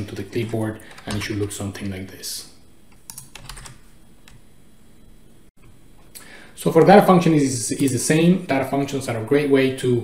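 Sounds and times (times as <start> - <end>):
keyboard keys clicking: 2.9 - 4.4.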